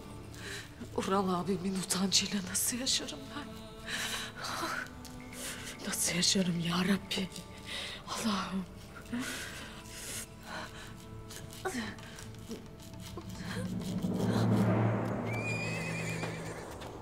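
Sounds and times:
low music drone: 0:00.0 - 0:17.0
horse whinnying: 0:15.3 - 0:17.0.

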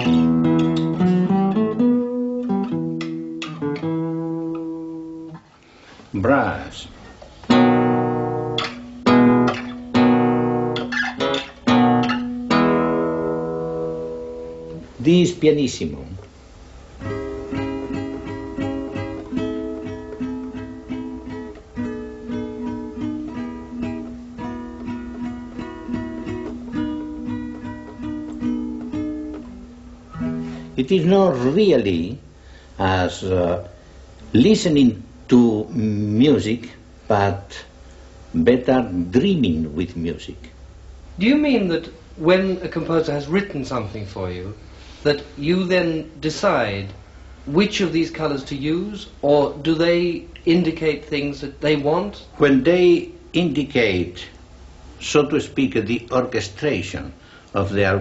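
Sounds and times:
classical guitar plucked notes: 0:00.0 - 0:05.4, 0:07.5 - 0:14.9, 0:17.0 - 0:31.4.

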